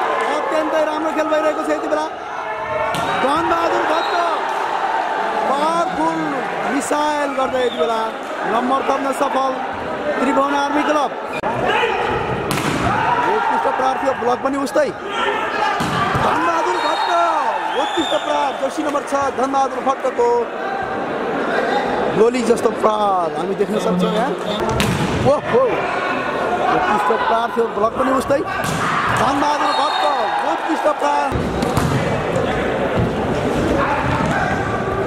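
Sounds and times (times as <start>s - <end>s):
volleyball smacks echoing: 2.9s - 3.5s, 12.2s - 13.1s, 15.8s - 16.4s, 24.6s - 25.3s, 28.6s - 29.4s, 31.3s - 33.3s.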